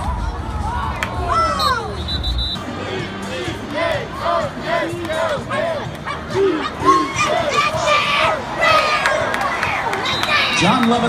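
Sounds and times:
crowd shouting: 0:00.0 - 0:11.0
referee whistle blasts: 0:01.4 - 0:02.7.

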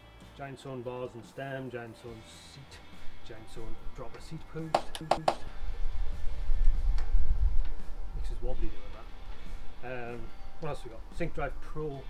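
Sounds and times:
sharp click: 0:04.7 - 0:05.5
wind buffeting microphone: 0:05.5 - 0:09.8.

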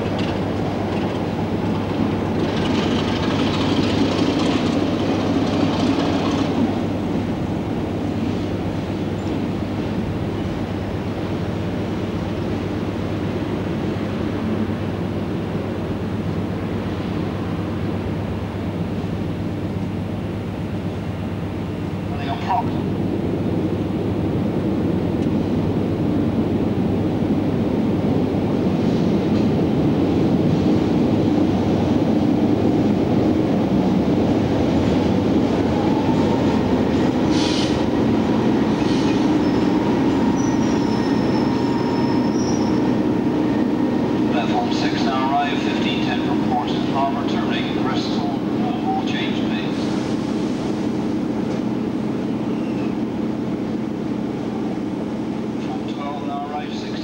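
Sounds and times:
diesel locomotive engine hum: 0:00.0 - 0:57.0.

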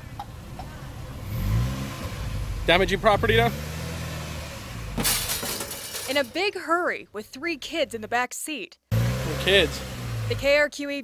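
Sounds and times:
car engine revving: 0:01.0 - 0:06.4, 0:08.9 - 0:10.6.

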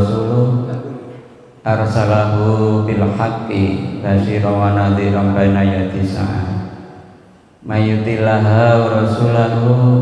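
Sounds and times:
man chanting into a microphone: 0:00.0 - 0:06.9, 0:07.6 - 0:10.0.

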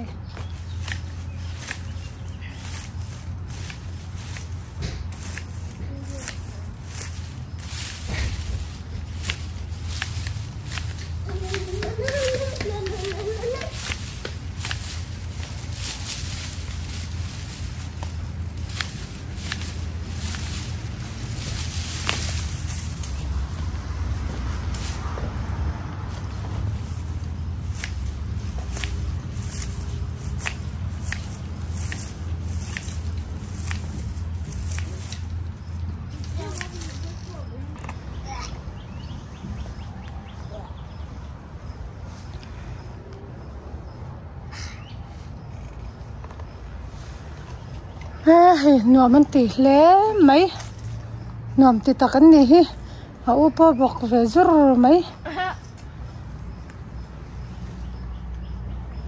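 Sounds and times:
loppers snipping dry stalks: 0:00.0 - 0:38.2
dry foliage rustling: 0:00.0 - 0:59.0.

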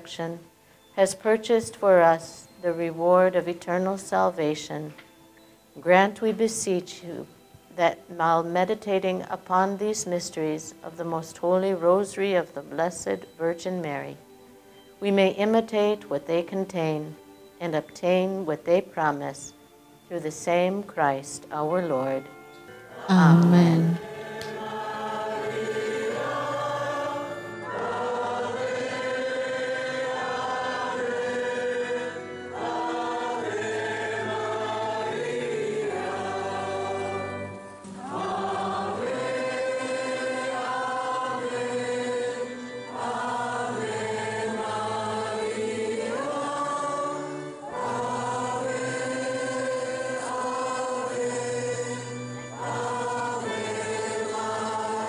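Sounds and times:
choir singing a slow chant: 0:22.9 - 0:55.0.

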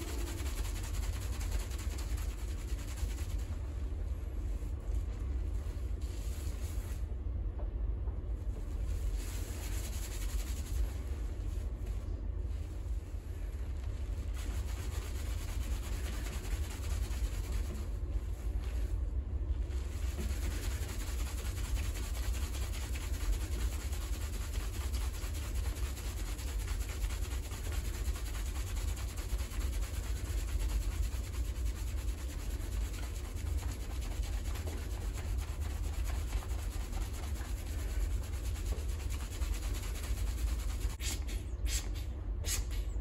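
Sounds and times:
fingers scrubbing lathered hair: 0:00.0 - 0:03.8, 0:08.9 - 0:12.0, 0:13.8 - 0:18.9, 0:19.6 - 0:41.0
low rumble: 0:00.0 - 0:21.0.

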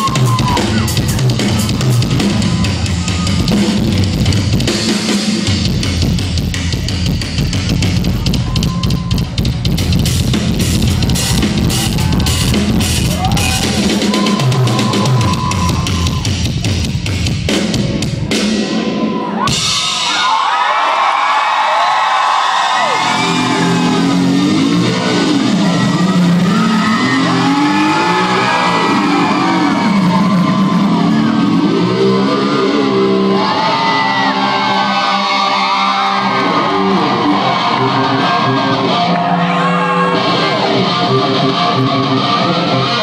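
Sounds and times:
crowd shouting and cheering: 0:00.0 - 0:43.0
electric guitar solo: 0:22.8 - 0:43.0.

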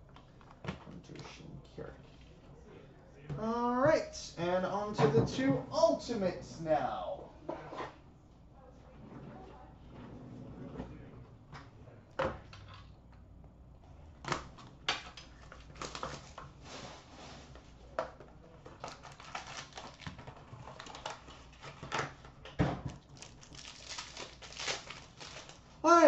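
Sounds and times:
cardboard and packaging rustling: 0:14.5 - 0:25.8.

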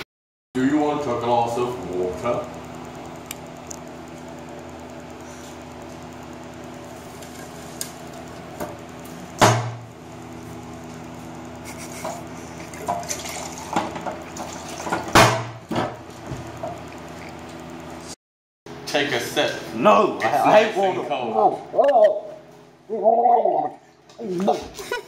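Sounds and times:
steady low hum: 0:00.6 - 0:25.0.

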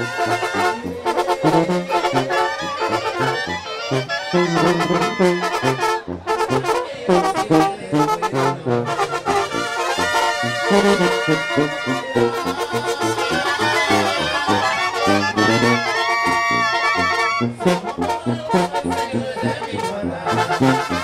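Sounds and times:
brass band music: 0:00.0 - 0:21.0
long wavering held notes: 0:04.0 - 0:06.2.

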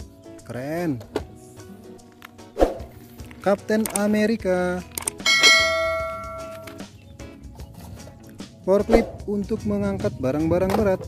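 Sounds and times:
bell-like ding: 0:05.2 - 0:06.7.

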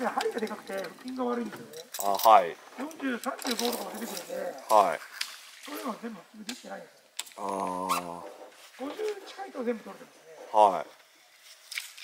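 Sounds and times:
man speaking: 0:00.0 - 0:05.0, 0:07.4 - 0:08.5, 0:10.2 - 0:11.0.

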